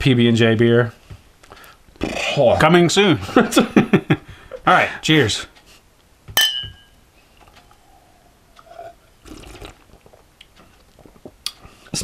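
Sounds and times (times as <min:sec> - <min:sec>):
beer glasses clinking: 0:06.4 - 0:07.0.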